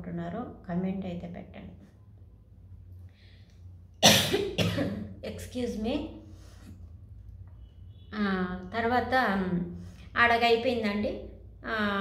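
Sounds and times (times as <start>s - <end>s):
woman coughing: 4.0s - 5.2s.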